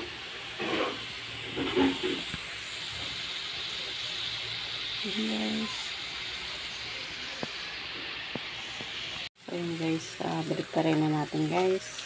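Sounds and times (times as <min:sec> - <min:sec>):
meat sizzling in a griddle pan: 0:00.0 - 0:12.0.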